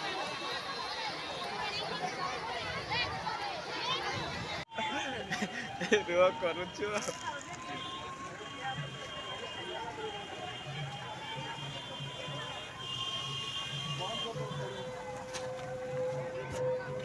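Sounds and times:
voices: 0.0 - 17.0
soft steady beat: 13.4 - 17.0.

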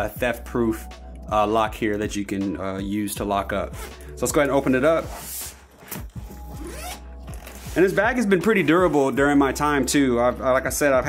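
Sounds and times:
backpack zipper opening: 3.6 - 9.1.

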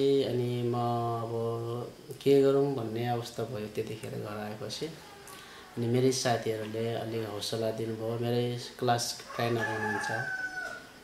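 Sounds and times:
man speaking: 0.0 - 5.2, 5.8 - 10.3.

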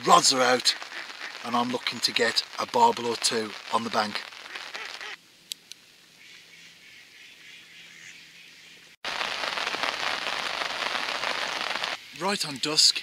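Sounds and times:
rain falling: 0.0 - 5.2, 9.0 - 13.0
faint outdoor background: 0.0 - 13.0.

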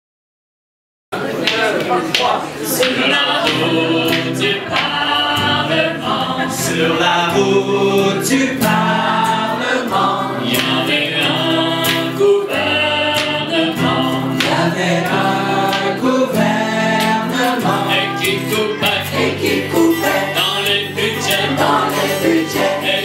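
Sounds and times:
mixed choir singing: 1.2 - 23.0
acoustic guitar: 2.2 - 23.0.

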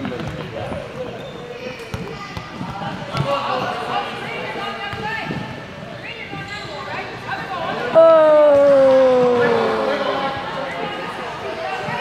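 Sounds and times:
soccer balls bouncing on wooden floor: 0.0 - 1.1, 1.9 - 3.7
children calling out: 8.0 - 10.5.

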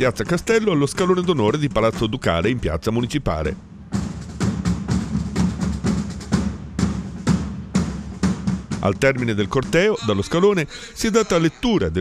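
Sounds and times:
marching drums beating cadence: 3.5 - 10.3.

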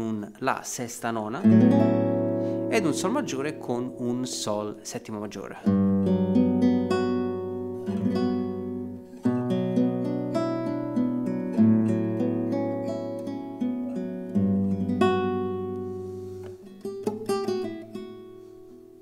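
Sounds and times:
classical guitar chords: 1.1 - 19.0
plucked guitar run: 1.4 - 18.5.

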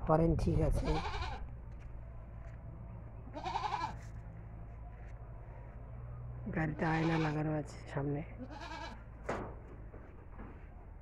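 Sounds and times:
faint low hum: 0.0 - 11.0
goat bleating: 0.8 - 1.5, 3.3 - 4.2, 6.7 - 7.5, 8.4 - 9.1.

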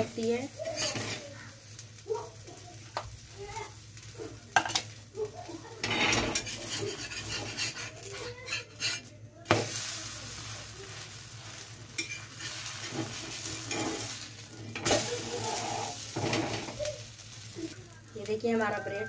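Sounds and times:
sandwich sizzling in oil: 0.0 - 19.0
metal spatula scraping and knocking: 0.6 - 1.2, 5.8 - 9.6, 12.0 - 16.8.

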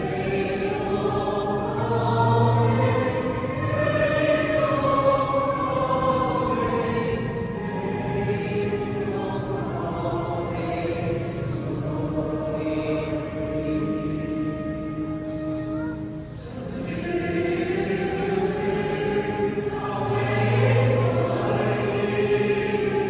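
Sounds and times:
choir singing in church: 0.0 - 23.0.

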